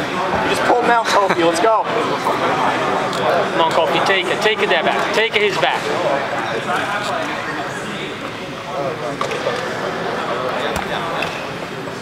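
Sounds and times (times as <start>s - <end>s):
people talking in a hall: 0.0s - 12.0s.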